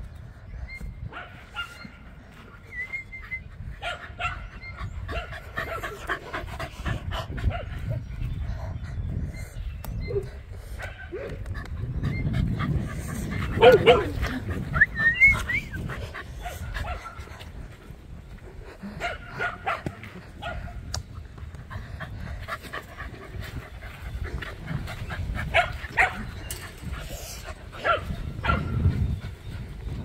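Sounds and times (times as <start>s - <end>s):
dog barking: 3.8s - 4.5s, 13.6s - 14.1s, 19.0s - 19.8s, 20.4s - 20.7s, 25.5s - 26.2s, 27.8s - 28.8s.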